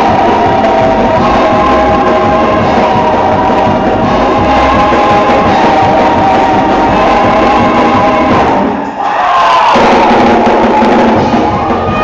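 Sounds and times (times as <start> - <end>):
congregation singing along: 0.0 - 12.0
gospel choir and band: 0.0 - 12.0.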